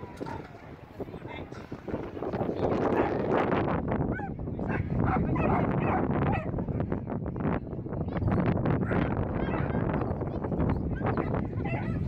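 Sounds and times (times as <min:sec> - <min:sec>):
dogs yipping and whining: 0:08.8 - 0:12.0.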